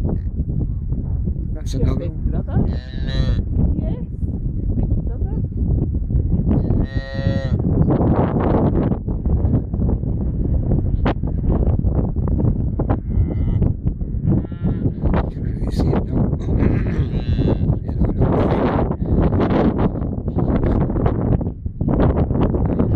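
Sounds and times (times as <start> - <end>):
wind rumbling on microphone: 0.0 - 22.9
calf mooing: 2.6 - 3.4, 6.6 - 7.6, 16.5 - 17.7.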